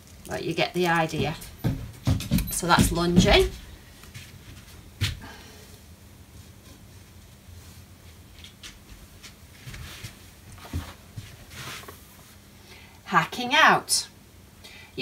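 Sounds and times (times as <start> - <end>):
soft knocks: 1.2 - 3.7.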